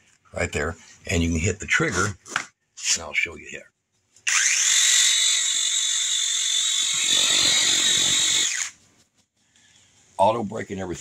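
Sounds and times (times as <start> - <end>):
cordless pole saw motor whining: 4.2 - 8.8.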